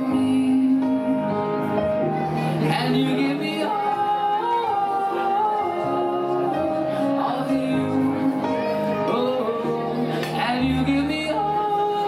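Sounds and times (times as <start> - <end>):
backing track music: 0.0 - 12.0
man singing long note: 2.6 - 12.0.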